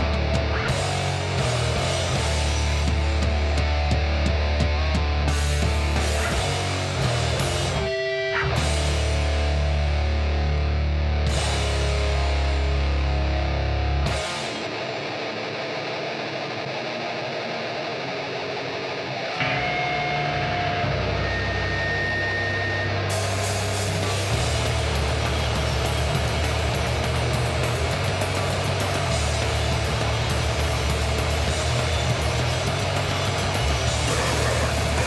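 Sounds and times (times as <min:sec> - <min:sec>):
drums with crashing cymbals: 0:00.0 - 0:07.9, 0:21.4 - 0:35.0
heavy bass: 0:00.0 - 0:15.0, 0:19.3 - 0:35.0
distorted electric guitar riff: 0:00.0 - 0:35.0.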